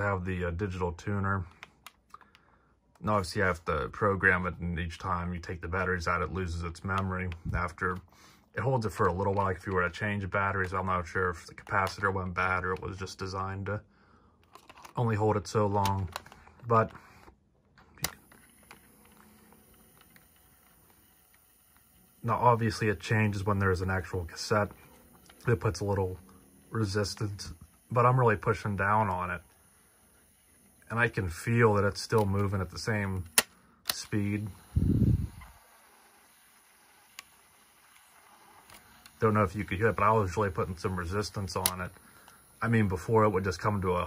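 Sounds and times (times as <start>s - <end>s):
tape motor whirring: 0.0s - 13.8s, 14.5s - 44.0s
sharp plastic click: 33.2s - 34.2s.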